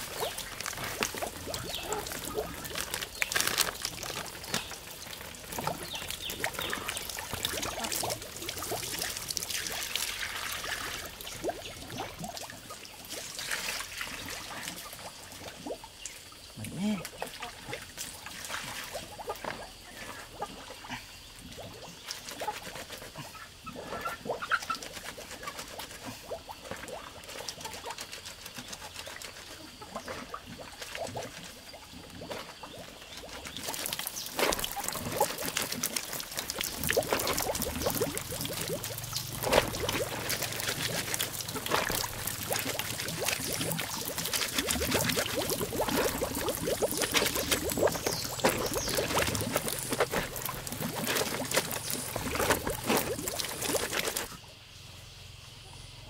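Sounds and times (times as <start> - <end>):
water splashing in basin: 0.0 - 16.1, 16.7 - 20.8, 23.7 - 54.4
water running into bucket: 0.0 - 20.8, 24.0 - 54.4.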